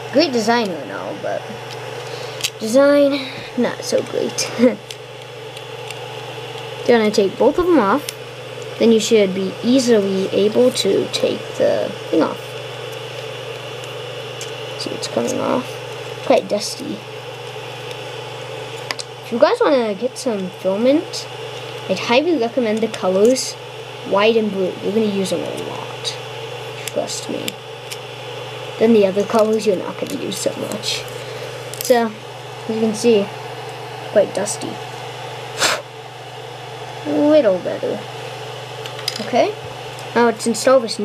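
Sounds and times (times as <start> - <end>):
printer cooling fans humming: 0.0 - 41.0
sharp puff of breath: 35.6 - 35.8.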